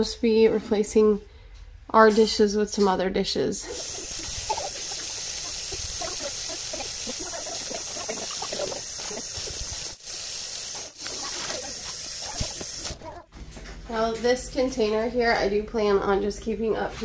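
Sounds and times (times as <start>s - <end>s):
tap water running into steel sink: 3.7s - 13.0s.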